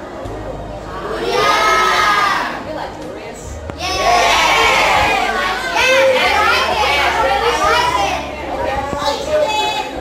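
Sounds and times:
students talking and laughing: 0.0s - 10.0s.

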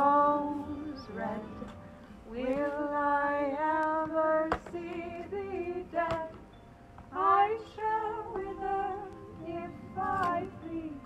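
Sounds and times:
woman singing without words: 0.0s - 6.5s, 7.1s - 11.0s.

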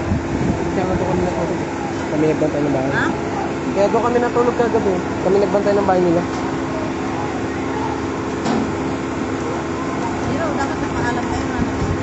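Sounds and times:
steady mechanical hum: 0.0s - 12.0s
people talking in background: 9.3s - 12.0s.

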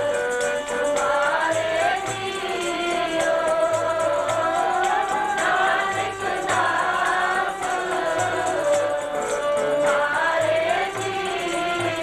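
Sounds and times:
regular percussion beat: 0.0s - 12.0s
group singing a hymn: 0.8s - 12.0s
woman singing into a microphone: 0.9s - 12.0s.

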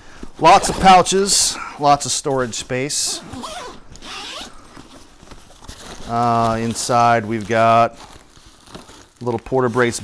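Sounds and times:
bag zipper being pulled open: 3.2s - 4.8s.

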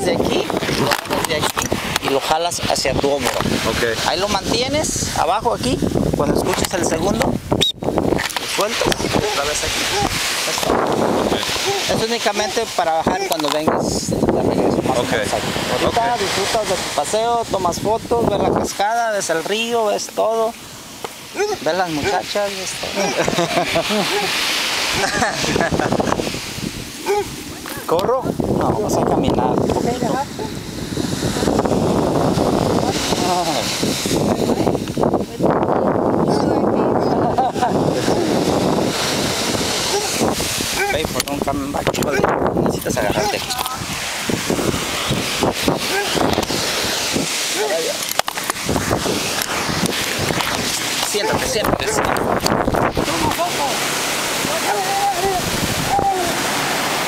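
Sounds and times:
steady rushing hiss: 0.0s - 57.0s
wind buffeting microphone: 0.0s - 57.0s
indistinct talking: 50.8s - 56.4s.

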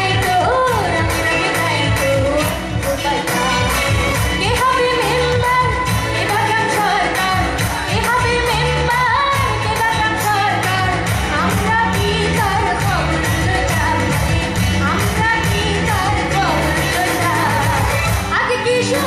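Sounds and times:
live band playing: 0.0s - 19.0s
woman singing pop song: 0.0s - 19.0s.

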